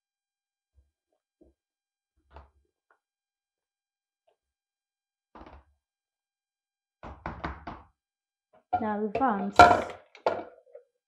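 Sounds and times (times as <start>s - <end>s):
person speaking: 8.8s - 9.9s.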